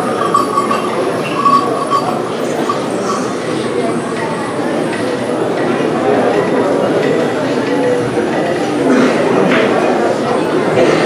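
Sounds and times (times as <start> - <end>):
high wavering tone: 0.0 - 5.8
crowd din: 0.0 - 11.0.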